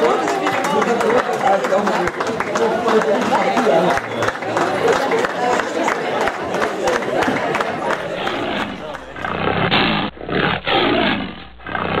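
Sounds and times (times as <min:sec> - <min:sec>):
lion roaring: 0:07.9 - 0:12.0.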